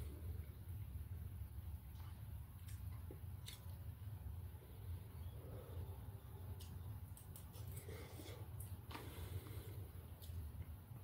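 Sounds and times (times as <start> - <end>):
steady low hum: 0.0 - 11.0
person chewing food: 1.8 - 4.1, 6.4 - 10.8.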